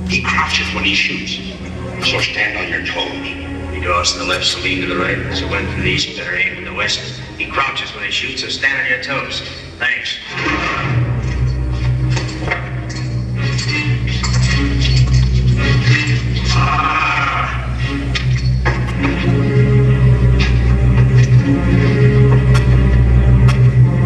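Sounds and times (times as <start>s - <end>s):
western film soundtrack music: 0.0s - 24.0s.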